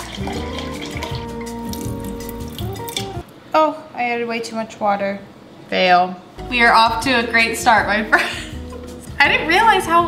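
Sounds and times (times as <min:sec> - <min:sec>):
water pouring into a glass: 0:00.0 - 0:03.2
background music: 0:00.0 - 0:03.3, 0:06.4 - 0:10.0.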